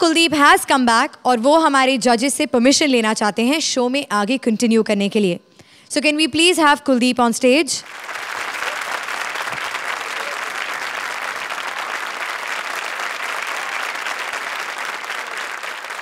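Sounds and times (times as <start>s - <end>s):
studio audience applauding: 7.8s - 16.0s.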